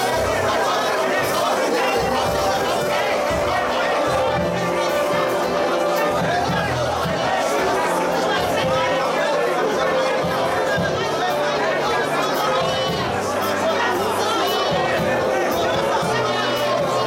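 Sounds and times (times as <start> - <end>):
congregation singing and praying: 0.0 - 17.0.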